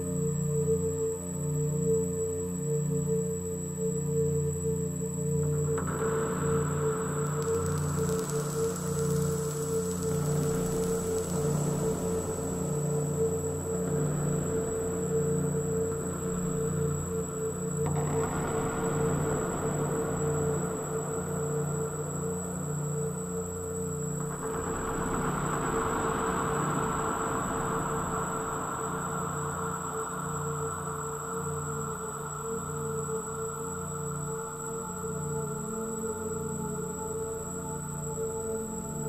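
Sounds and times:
low pulsing drone: 5.4s - 39.0s
electronic hiss: 6.3s - 15.0s.

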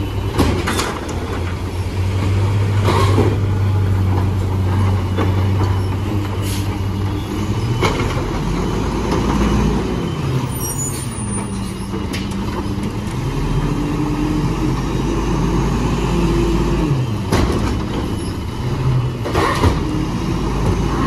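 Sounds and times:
garbage truck engine: 0.0s - 21.0s
air brake hisses: 6.4s - 6.8s.

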